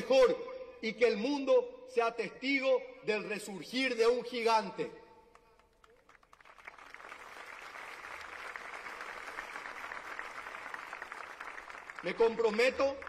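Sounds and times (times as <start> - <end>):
large crowd applauding: 5.3 - 13.0.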